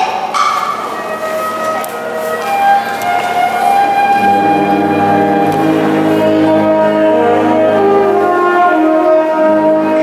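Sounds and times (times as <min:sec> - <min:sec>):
brass band playing: 0:00.5 - 0:10.0.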